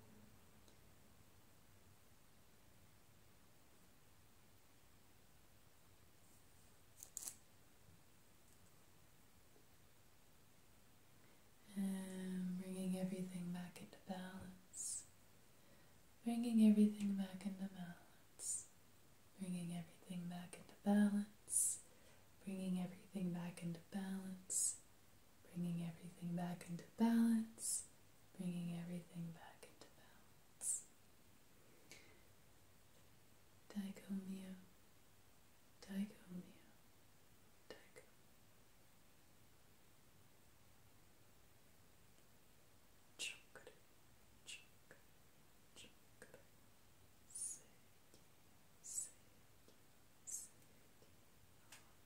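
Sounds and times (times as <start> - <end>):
soft low murmur: 11.0 - 31.0, 43.1 - 52.0
woman speaking softly: 11.6 - 15.1, 16.2 - 18.7, 19.4 - 21.8, 22.4 - 24.8, 25.5 - 30.9, 33.7 - 34.7, 35.8 - 36.8, 45.8 - 46.5, 47.3 - 47.8, 48.8 - 49.3, 50.3 - 50.6
woman whispering: 11.6 - 15.1, 16.2 - 18.7, 19.4 - 21.8, 22.4 - 24.8, 25.5 - 30.9, 33.7 - 34.7, 35.8 - 36.8, 37.7 - 38.1, 43.2 - 43.8, 44.4 - 45.1, 45.7 - 46.5, 47.3 - 51.2.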